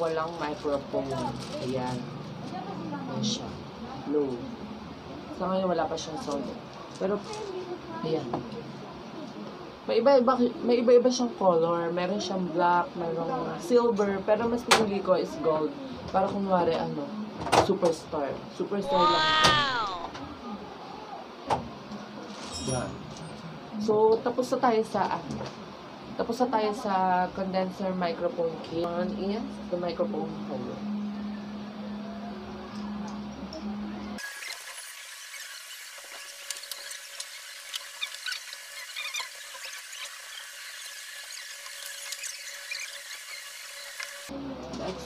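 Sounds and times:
thin high squealing tone: 0:22.5 - 0:23.4, 0:34.2 - 0:44.3.

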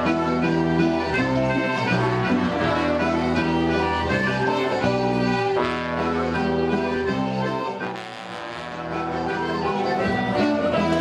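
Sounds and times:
folk band playing a dance tune: 0:00.0 - 0:11.0.

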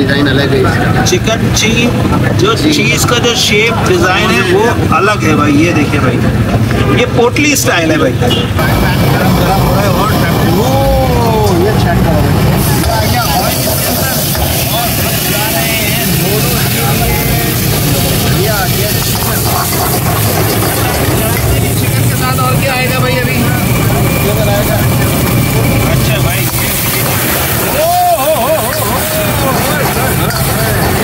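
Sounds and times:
people talking: 0:00.0 - 0:31.0
gas burner rushing: 0:08.1 - 0:31.0.

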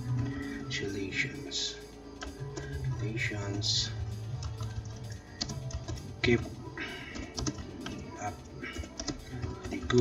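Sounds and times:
keyboard typing: 0:00.0 - 0:01.0, 0:02.0 - 0:10.0.

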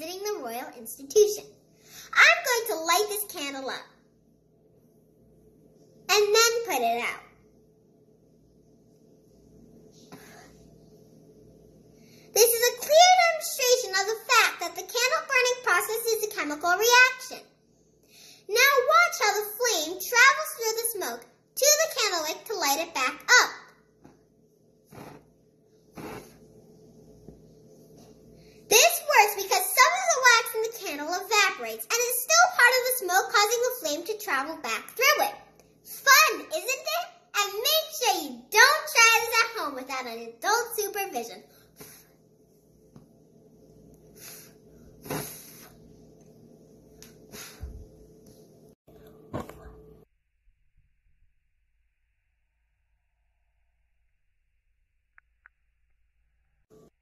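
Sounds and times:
faint steady hum: 0:00.0 - 0:50.1
child blowing short puffs: 0:24.9 - 0:25.3, 0:25.9 - 0:26.4, 0:41.8 - 0:42.1, 0:44.1 - 0:45.8, 0:47.3 - 0:47.8.

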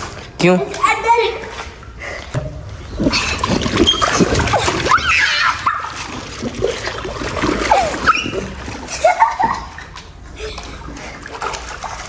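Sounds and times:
water splashing in paddling pool: 0:00.0 - 0:12.0
child's voice: 0:00.6 - 0:01.6.

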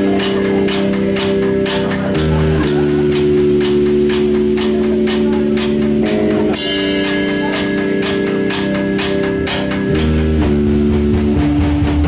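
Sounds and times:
cymbal strokes: 0:00.0 - 0:11.6
sustained bass and guitar chord: 0:00.0 - 0:12.0.

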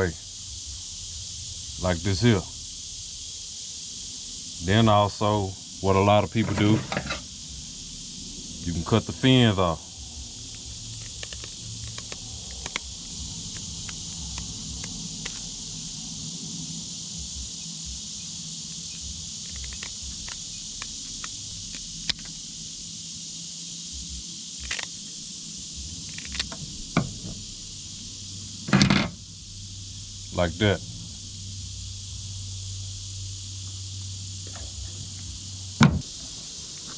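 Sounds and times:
high-pitched insect drone: 0:00.0 - 0:36.9.

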